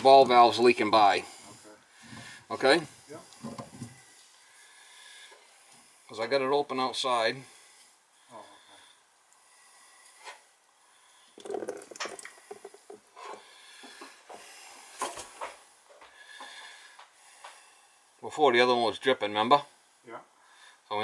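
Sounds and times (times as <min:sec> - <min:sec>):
soft hiss: 0:00.0 - 0:21.0.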